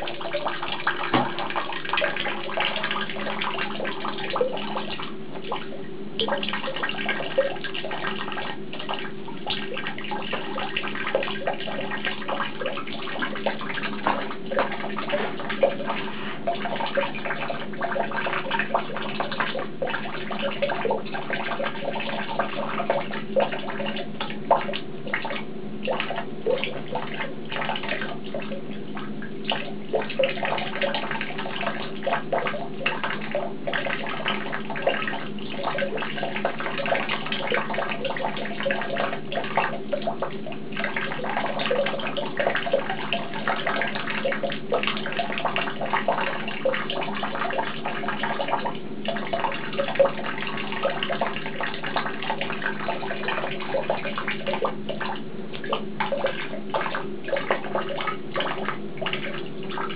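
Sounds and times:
tap water splashing into basin: 0.0s - 59.9s.

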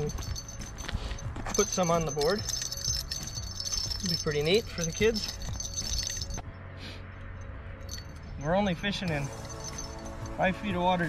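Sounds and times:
bells jingling: 0.0s - 6.4s, 7.9s - 11.0s.

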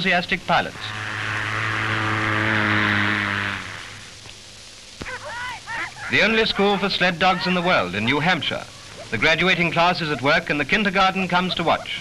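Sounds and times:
propeller aircraft engine drone: 0.3s - 4.2s.

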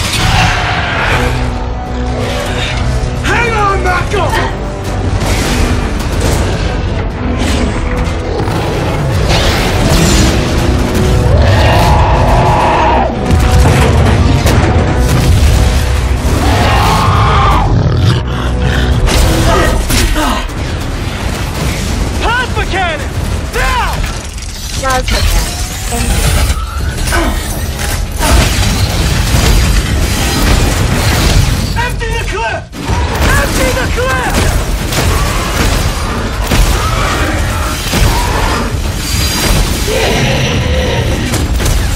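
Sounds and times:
giant monster roar: 0.0s - 1.6s, 11.2s - 13.2s, 16.2s - 18.9s, 35.0s - 39.0s, 39.7s - 41.5s
film score music: 0.0s - 41.9s
deep booms and heavy impacts: 4.6s - 24.4s.

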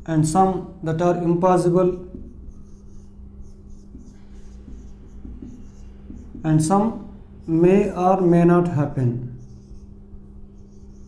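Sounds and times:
faint steady hum: 0.0s - 11.0s
marker writing on whiteboard: 0.1s - 11.0s.

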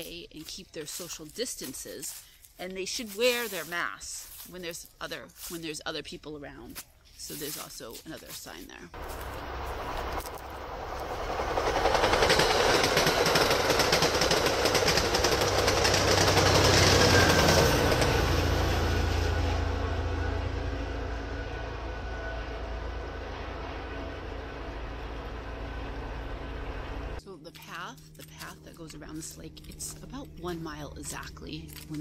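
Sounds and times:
diesel locomotive engine drone: 8.9s - 32.0s
train wheels clattering on rails: 9.0s - 19.3s.

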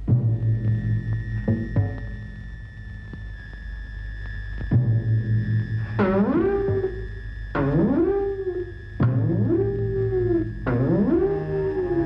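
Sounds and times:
low drone: 0.0s - 12.0s
eerie pitched wail: 5.8s - 12.0s.

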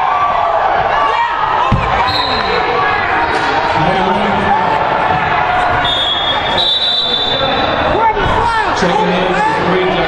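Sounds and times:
people talking over each other: 2.6s - 10.0s.

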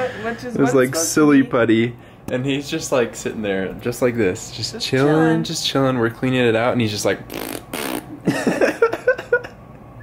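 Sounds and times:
person blowing fart noise: 7.3s - 8.4s
person laughing: 8.1s - 9.6s.

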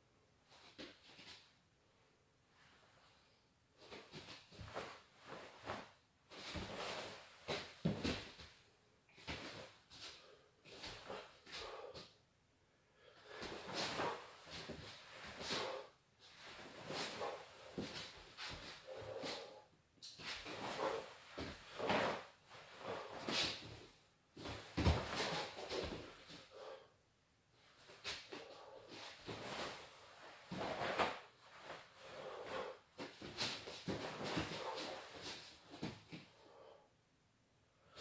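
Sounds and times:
bare feet moving on floor: 2.6s - 12.0s, 13.0s - 26.8s, 27.6s - 36.7s
karate uniform swishing and snapping: 3.9s - 8.6s, 13.3s - 26.4s, 27.8s - 36.3s.

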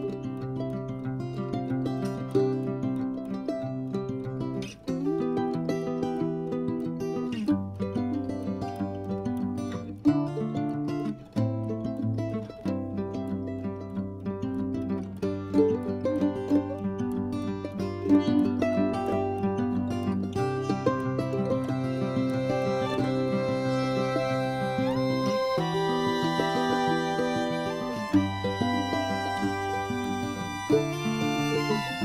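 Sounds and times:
plucked string melody: 0.0s - 32.0s.

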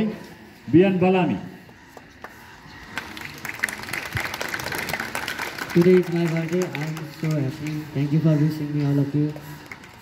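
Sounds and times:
crowd clapping: 1.9s - 10.0s.

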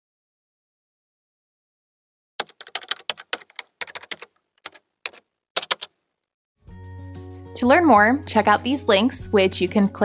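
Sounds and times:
computer keyboard typing: 2.4s - 6.0s
background music: 6.6s - 10.0s.

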